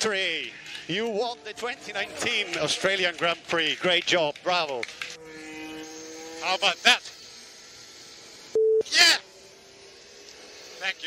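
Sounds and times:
radio beep: 8.6s - 8.9s.

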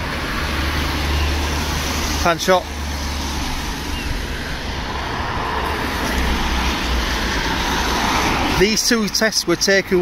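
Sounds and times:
traffic on wet road: 0.0s - 10.0s.

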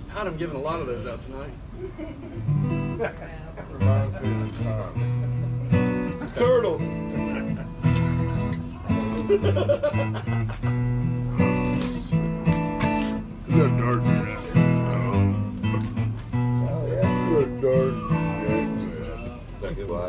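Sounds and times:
acoustic guitars strumming: 2.3s - 20.0s
man's voice: 13.4s - 15.6s, 16.7s - 20.0s.

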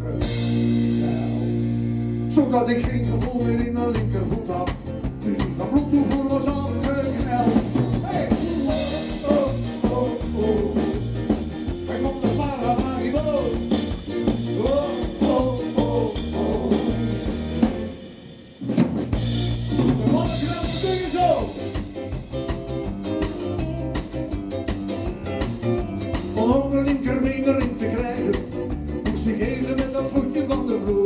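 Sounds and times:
drum kit: 0.0s - 31.0s
electric guitars: 0.0s - 31.0s
person singing: 2.4s - 17.6s, 26.0s - 31.0s.

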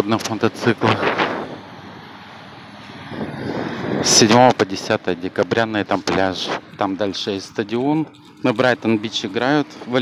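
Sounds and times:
street traffic hum: 0.0s - 10.0s.

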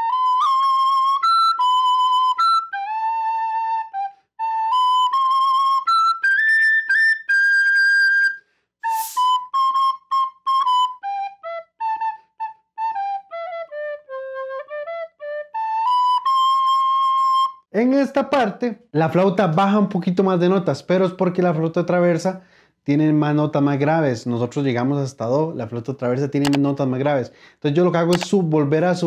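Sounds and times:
quick breath: 8.4s - 9.3s, 22.4s - 22.8s, 27.3s - 27.6s.

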